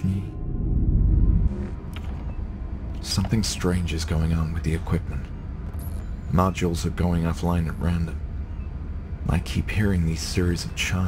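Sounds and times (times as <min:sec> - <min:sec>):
deep rumble: 0:00.0 - 0:10.8.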